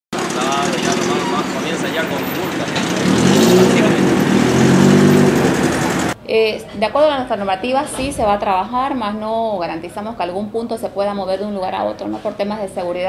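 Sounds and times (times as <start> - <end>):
indistinct voices: 0.2 - 6.2
traffic: 0.2 - 6.2
vehicle engine running close by: 0.2 - 6.2.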